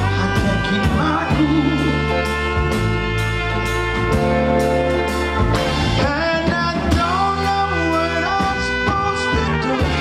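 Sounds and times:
man singing: 0.0s - 2.3s, 5.9s - 10.0s
soul band playing: 0.0s - 10.0s.

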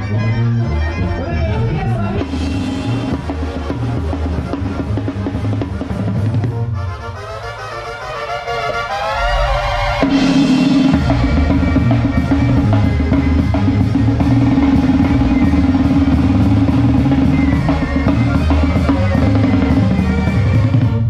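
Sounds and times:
bass drum: 0.0s - 6.8s, 9.2s - 21.0s
cymbal crash: 8.9s - 12.8s.

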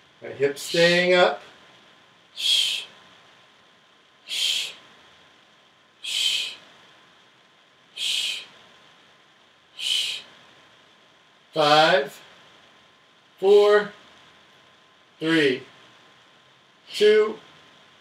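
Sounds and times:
person shushing exhales: 2.4s - 2.9s, 4.3s - 4.8s, 6.0s - 6.6s, 8.0s - 8.5s, 9.8s - 10.3s.

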